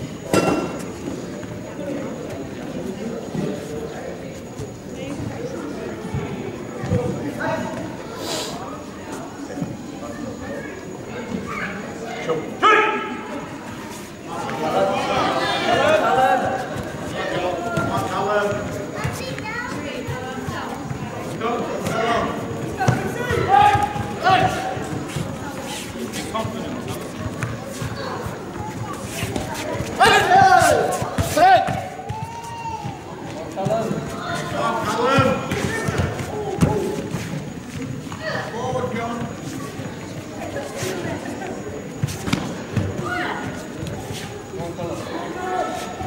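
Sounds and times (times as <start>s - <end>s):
chatter of voices: 0.0s - 46.0s.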